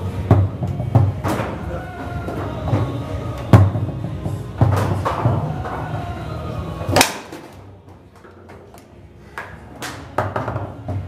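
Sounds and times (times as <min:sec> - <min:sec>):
foosball ball and rods knocking: 0:00.2 - 0:06.0, 0:06.8 - 0:11.0.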